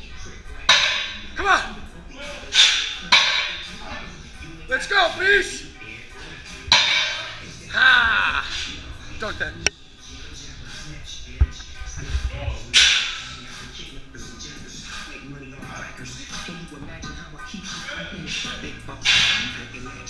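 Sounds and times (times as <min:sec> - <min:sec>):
music playing: 0:00.0 - 0:20.0
loud shouts: 0:07.7 - 0:08.6.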